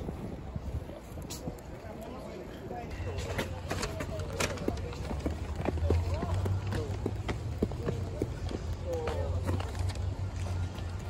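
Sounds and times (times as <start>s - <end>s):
chatter of voices: 0.0s - 11.0s
footsteps on concrete steps: 3.2s - 11.0s.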